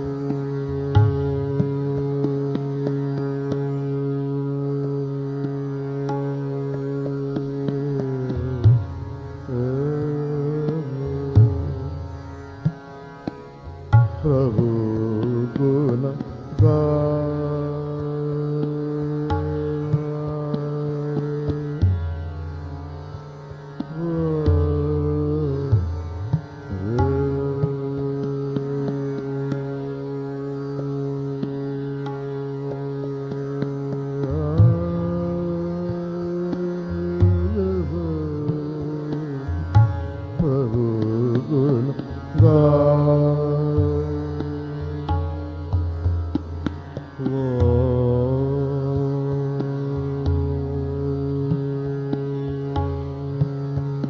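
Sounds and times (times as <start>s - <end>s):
tabla stroke: 0.0s - 54.0s
man singing a long note: 9.5s - 12.0s, 24.0s - 25.8s, 26.8s - 31.3s, 34.1s - 39.6s, 40.4s - 45.1s, 47.2s - 51.9s.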